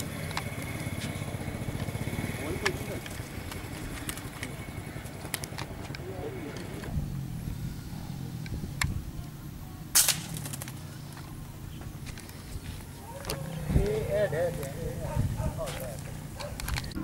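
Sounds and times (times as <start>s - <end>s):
voices: 0.0s - 17.0s
sharp gunshot: 9.9s - 10.6s.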